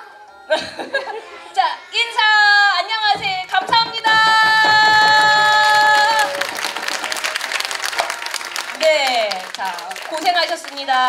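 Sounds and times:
audience applause: 3.6s - 11.0s.

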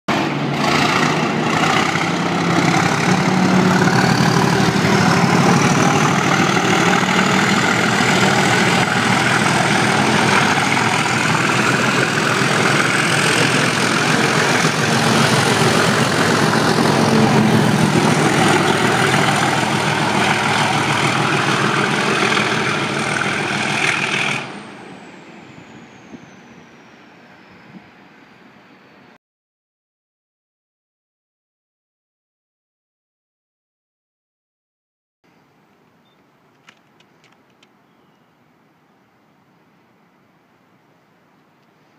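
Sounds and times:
train wheels on rails: 0.1s - 28.0s
diesel locomotive engine passing: 0.1s - 29.2s.

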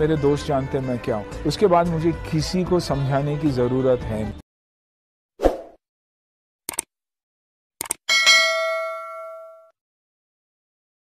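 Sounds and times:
notification bell chime: 8.1s - 9.7s.

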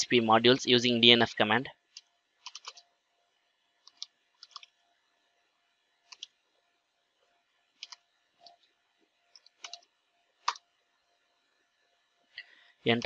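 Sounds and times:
computer keyboard keystrokes: 2.0s - 2.8s, 3.8s - 4.7s, 6.1s - 6.4s, 7.8s - 8.6s, 9.3s - 10.6s.

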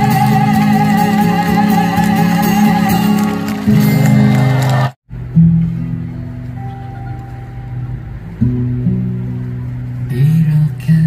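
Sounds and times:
acoustic guitar strumming: 0.0s - 11.0s
guitar chord ringing with picked notes: 5.2s - 10.1s.

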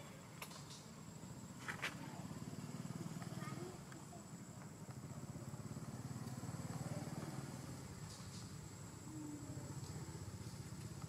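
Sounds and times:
faint indistinct voices: 1.6s - 11.0s.

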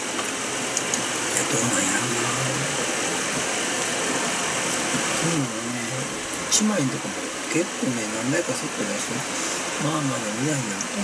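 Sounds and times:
steady rushing fan noise: 0.0s - 11.0s.

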